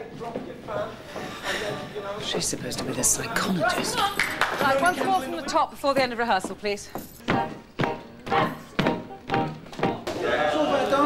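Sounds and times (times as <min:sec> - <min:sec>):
piano chords: 0:07.3 - 0:10.1.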